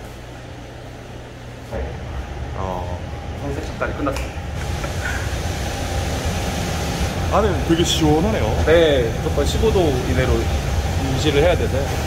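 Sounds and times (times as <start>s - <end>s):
machinery hiss: 4.6s - 12.0s.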